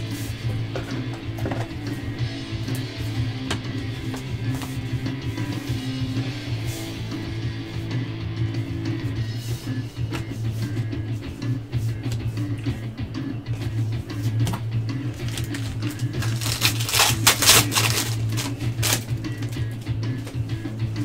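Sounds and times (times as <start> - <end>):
background music: 0.0 - 21.0
plastic wrapper crinkling and tearing: 15.2 - 19.1.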